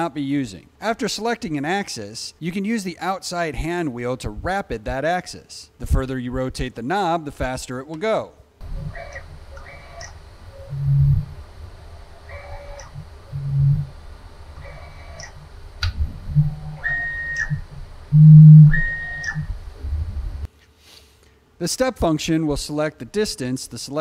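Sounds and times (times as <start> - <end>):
mill drive motor whining: 8.6 - 20.5.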